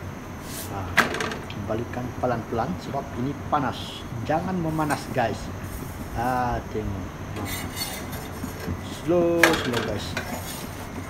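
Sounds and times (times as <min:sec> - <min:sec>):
steady low hum: 0:00.0 - 0:11.0
metal spatula scraping: 0:07.4 - 0:08.8, 0:09.6 - 0:11.0.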